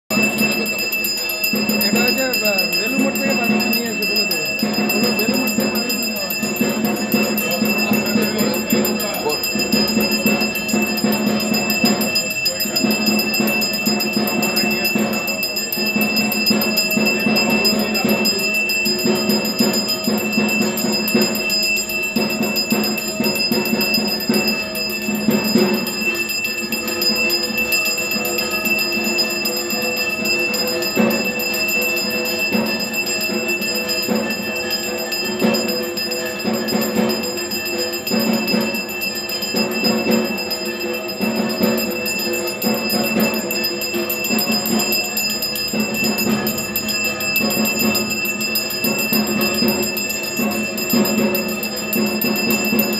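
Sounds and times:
handbell ringing: 0.1s - 52.9s.

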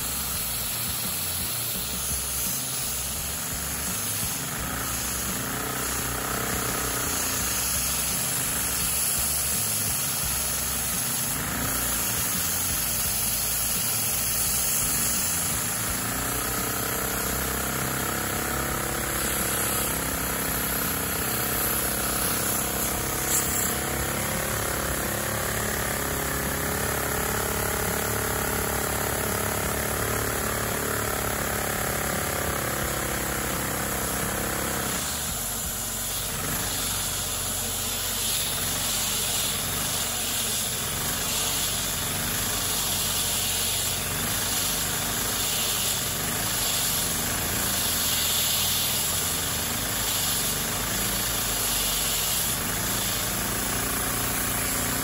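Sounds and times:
toy engine running hum: 0.0s - 55.0s
vacuum cleaner rushing hiss: 0.0s - 55.0s.

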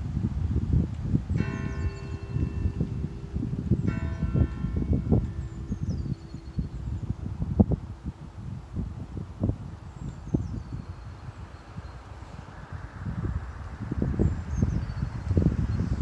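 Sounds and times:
wind buffeting microphone: 0.0s - 16.0s
church bell ringing: 1.3s - 8.0s.

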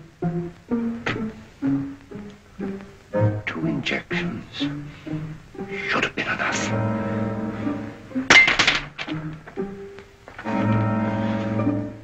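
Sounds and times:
orchestral music sustained chords: 0.0s - 12.0s.

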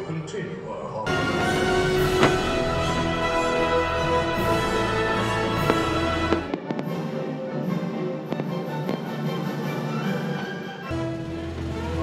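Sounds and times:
fireworks bangs: 1.1s - 7.2s, 8.3s - 10.5s
show music with held chords: 1.1s - 12.0s.

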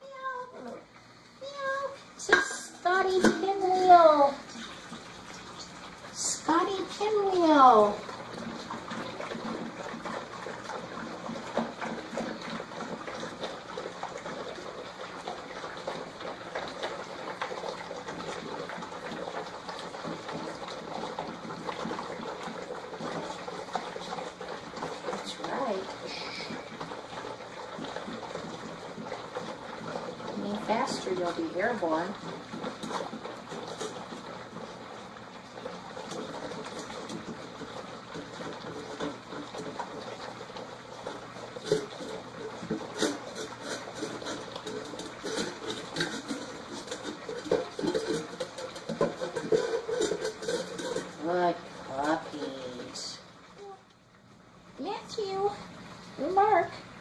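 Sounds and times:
puppies lapping food: 0.0s - 57.0s
metal bowl clank: 2.2s - 3.7s, 43.0s - 51.4s.

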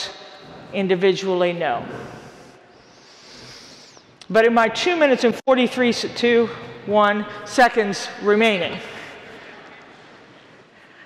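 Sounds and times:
faint hall room hiss: 0.0s - 11.0s.

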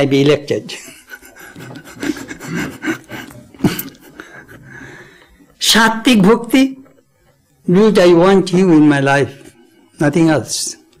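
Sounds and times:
person laughing: 0.7s - 4.7s.

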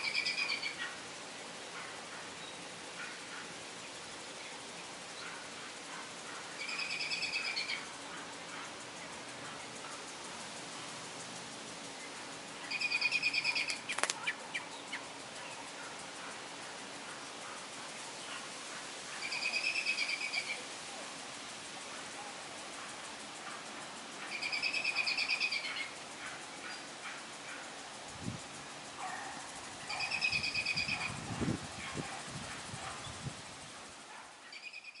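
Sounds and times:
bird trilled call: 0.0s - 1.0s, 6.3s - 7.9s, 12.6s - 15.1s, 19.1s - 20.6s, 24.2s - 26.0s, 29.8s - 31.2s, 34.5s - 35.0s
outdoor hiss: 0.0s - 35.0s.

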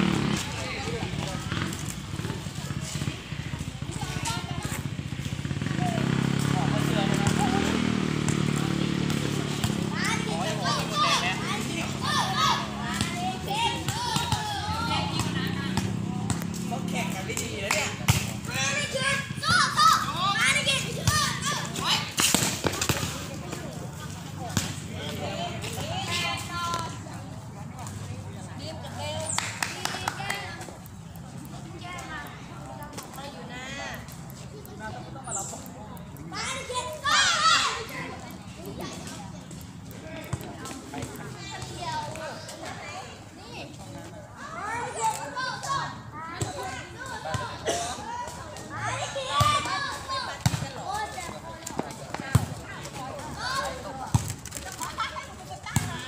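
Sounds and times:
players calling and chattering: 0.0s - 56.0s
people shouting: 9.8s - 16.0s, 18.5s - 22.2s, 36.4s - 38.0s.

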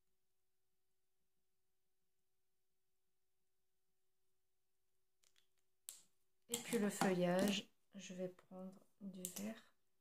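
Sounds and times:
marker cap clicking: 5.2s - 7.6s.

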